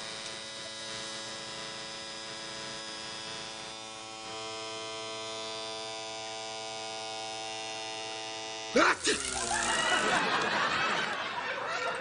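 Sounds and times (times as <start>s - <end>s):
electric tattoo machine buzzing: 0.0s - 10.2s.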